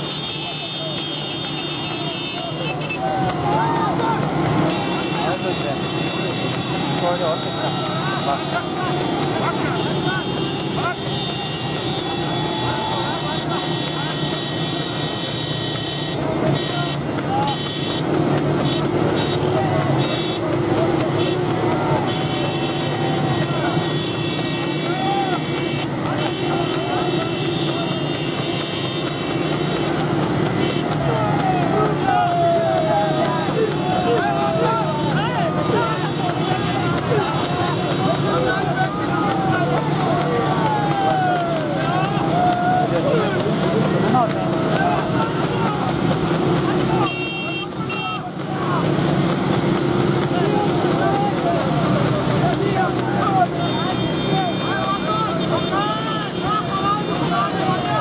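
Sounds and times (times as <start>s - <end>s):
men shouting: 0.0s - 58.0s
motorcycle and car engines running: 0.0s - 58.0s.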